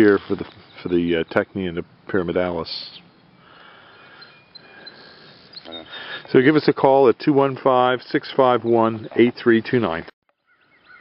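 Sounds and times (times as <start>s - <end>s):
faint outdoor ambience: 0.0s - 11.0s
faint high chirps: 2.9s - 6.3s.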